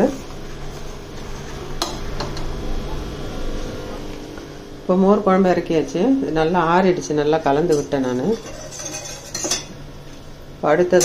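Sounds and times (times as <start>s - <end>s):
spoon clinking against pot: 7.7s - 9.7s
spoon stirring thick liquid: 7.7s - 9.7s.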